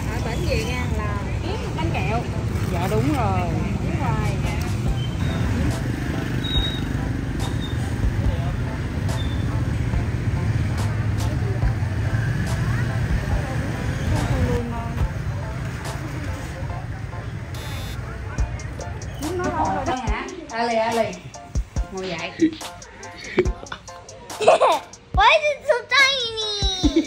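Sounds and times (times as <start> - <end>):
street traffic: 0.0 - 27.0
people talking: 10.8 - 27.0.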